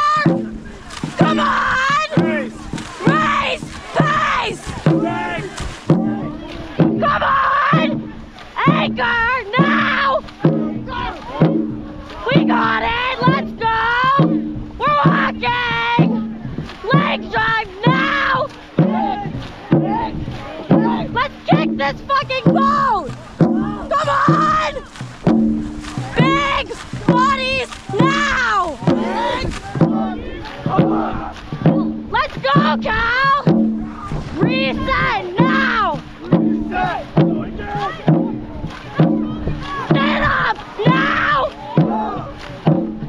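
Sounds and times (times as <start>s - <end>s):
boat crew shouting calls: 0.0s - 43.0s
paddle stroke beats: 0.0s - 43.0s.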